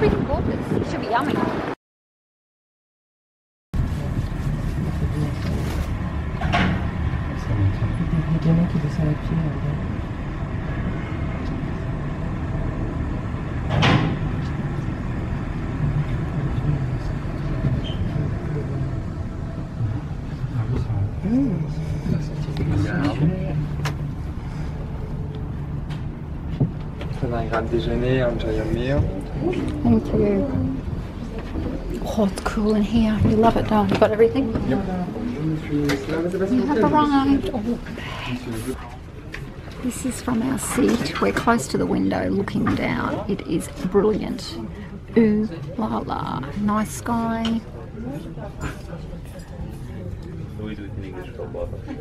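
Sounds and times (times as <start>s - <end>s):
lift rumble and hum: 3.8s - 52.0s
murmured voices: 16.2s - 25.3s.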